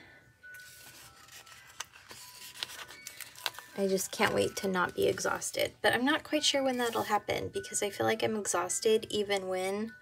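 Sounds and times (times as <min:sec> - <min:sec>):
paper rustling: 0:00.5 - 0:05.4.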